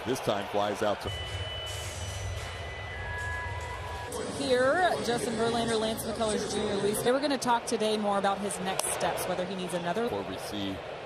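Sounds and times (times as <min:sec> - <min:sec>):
crowd murmur: 0:03.1 - 0:09.9.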